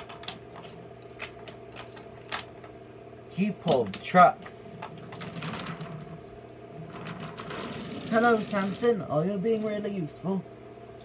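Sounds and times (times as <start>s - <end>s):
wooden toy train rattling: 3.7s - 6.2s, 6.9s - 9.0s.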